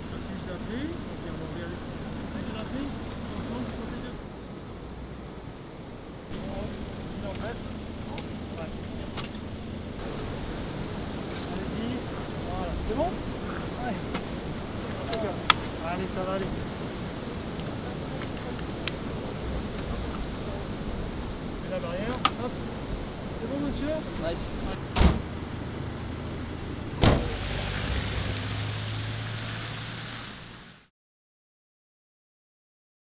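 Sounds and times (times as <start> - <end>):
voices: 0.0 - 4.4, 6.3 - 24.9
low outdoor rumble: 0.0 - 30.9
van engine running: 6.3 - 13.5, 22.6 - 30.8
vehicle door slamming: 24.8 - 25.3, 27.0 - 27.5.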